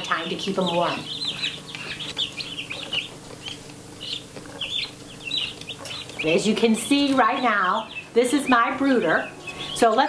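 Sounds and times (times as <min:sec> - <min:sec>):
baby chicks peeping: 0:00.0 - 0:10.0.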